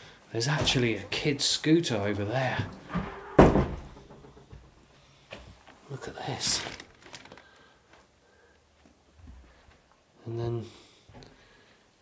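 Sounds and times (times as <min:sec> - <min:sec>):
loud thud: 0:02.9 - 0:04.8.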